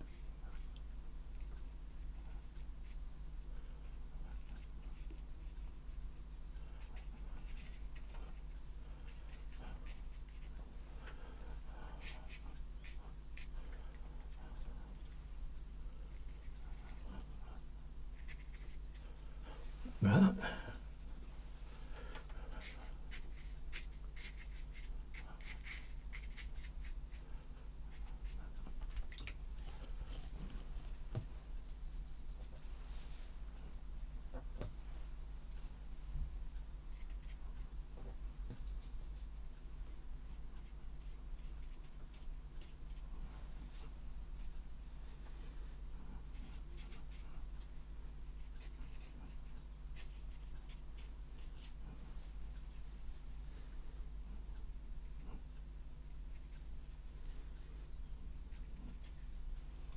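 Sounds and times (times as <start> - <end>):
brush scrubbing paint on paper: 0.0 - 0.7, 3.8 - 20.0, 20.7 - 33.3, 40.6 - 53.6
steady low hum: 0.0 - 59.9.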